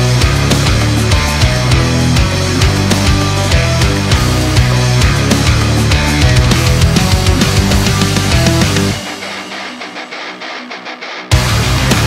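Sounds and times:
electric guitar strumming: 0:00.0 - 0:12.0.

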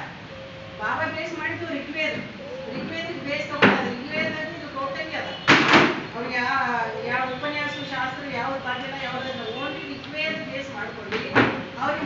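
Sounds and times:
woman speaking: 0:00.8 - 0:05.4, 0:06.2 - 0:12.0.

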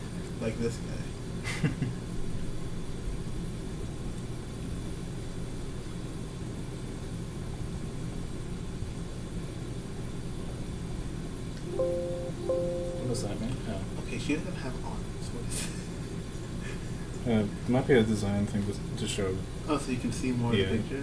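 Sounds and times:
held notes of background music: 0:11.6 - 0:13.8.

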